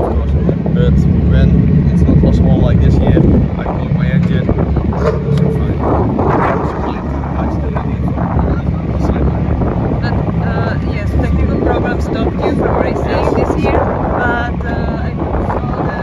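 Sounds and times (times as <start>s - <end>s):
chatter of voices: 0.0s - 16.0s
vehicle engine humming: 0.0s - 16.0s.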